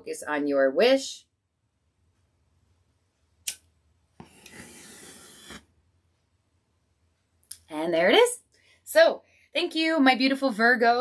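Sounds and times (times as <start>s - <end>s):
flash paper flaring with hissing rush: 4.5s - 5.6s.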